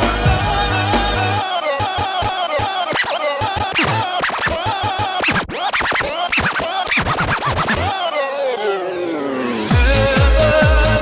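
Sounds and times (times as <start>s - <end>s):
electronic dance music: 0.0s - 11.0s
record scratching pitch swoops: 2.8s - 9.6s.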